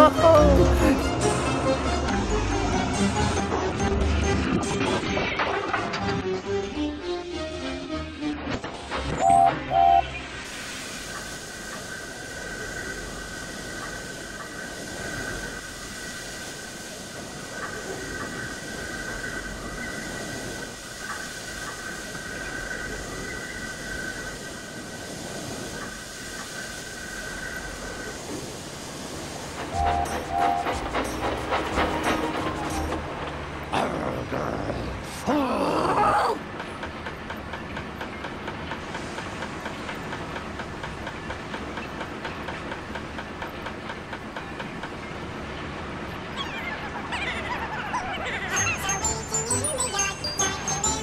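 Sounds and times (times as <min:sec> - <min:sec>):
railway trucks clattering and crashing: 0:00.0 - 0:11.9, 0:27.5 - 0:34.3, 0:36.3 - 0:51.0
steady hiss with high tone: 0:10.0 - 0:30.7.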